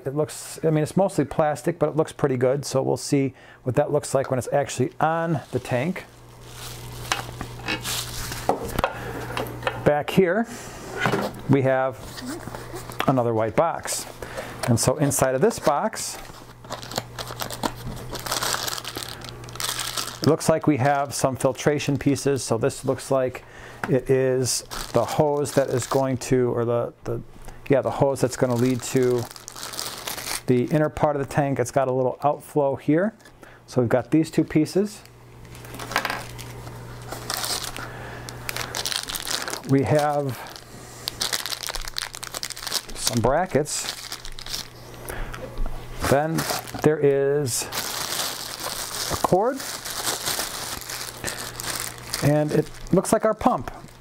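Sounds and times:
plastic bags crinkling: 0:04.5 - 0:08.8, 0:12.0 - 0:21.2, 0:24.4 - 0:26.3, 0:27.9 - 0:30.9, 0:34.8 - 0:44.8, 0:46.0 - 0:54.0.

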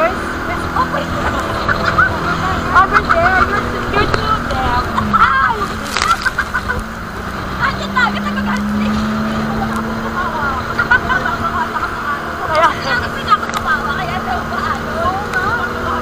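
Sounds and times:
boat engine droning: 0:00.0 - 0:16.0.

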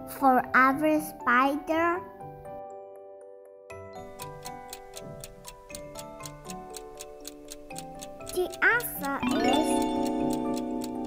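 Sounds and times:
cheerful background music: 0:00.0 - 0:11.0
clock ticking rapidly: 0:04.0 - 0:11.0.

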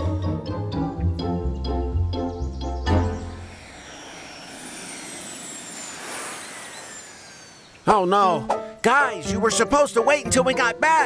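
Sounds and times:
upbeat cartoon music: 0:00.0 - 0:03.4, 0:08.4 - 0:11.0.

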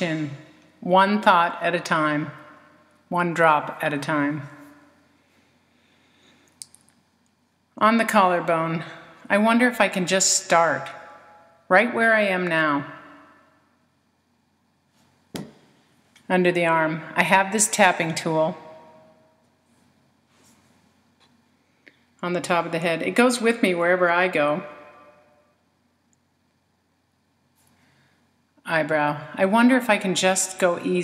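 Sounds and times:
voice: 0:00.0 - 0:02.4, 0:03.1 - 0:04.6, 0:07.8 - 0:10.9, 0:11.7 - 0:13.0, 0:16.2 - 0:18.6, 0:22.2 - 0:24.6, 0:28.7 - 0:31.0.

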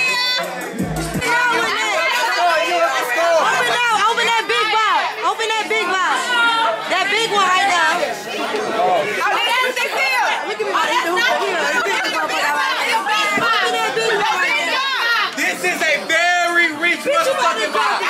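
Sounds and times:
overlapping chatter of voices: 0:00.0 - 0:18.0.

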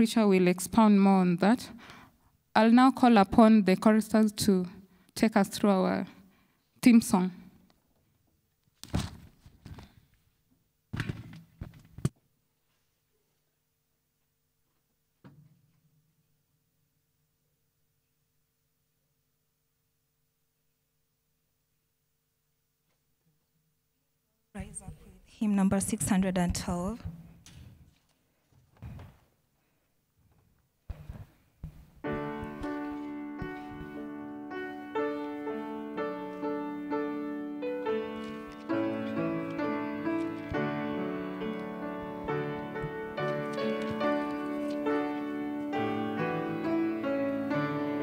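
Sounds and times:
microphone handling bumps and rubs: 0:28.6 - 0:29.3, 0:30.3 - 0:34.1
keyboard playing sustained chords: 0:32.1 - 0:48.0.

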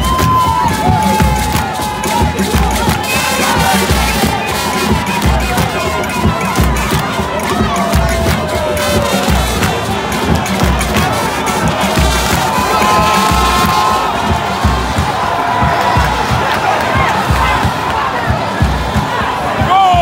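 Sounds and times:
hand-clapping: 0:00.0 - 0:19.2
crowd singing and chanting: 0:00.0 - 0:20.0
low drum beat: 0:00.0 - 0:20.0.

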